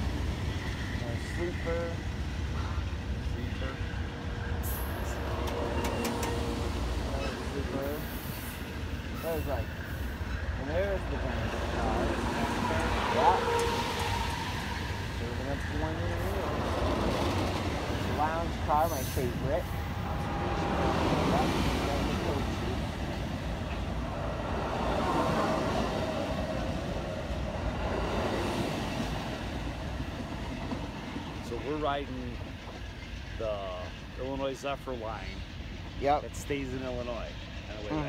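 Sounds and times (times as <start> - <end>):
train low rumble: 0.0 - 38.0
high squeals: 3.5 - 26.9.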